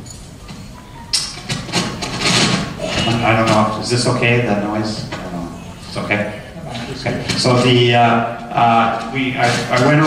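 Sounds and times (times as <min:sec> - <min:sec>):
rough scraping rubbing noise: 0:01.4 - 0:10.0.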